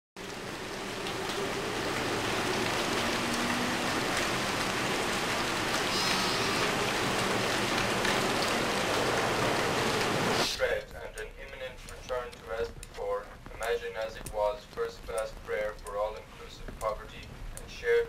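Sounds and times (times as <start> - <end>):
steady rain hiss: 0.2 - 18.0.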